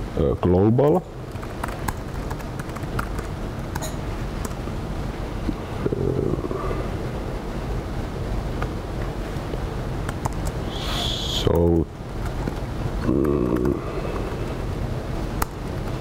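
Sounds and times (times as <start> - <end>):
room hum and hiss: 0.0 - 16.0
laptop keys typing: 1.2 - 4.6, 10.0 - 10.6, 11.5 - 14.3.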